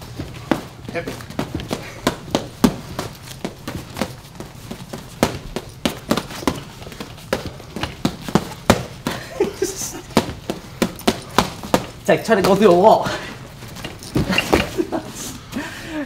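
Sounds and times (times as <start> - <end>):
boxing gloves slapping: 0.0 - 15.1.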